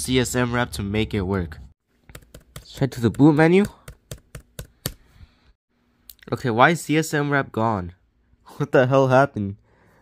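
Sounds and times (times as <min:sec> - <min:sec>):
laptop keys tapping: 0:02.0 - 0:05.1.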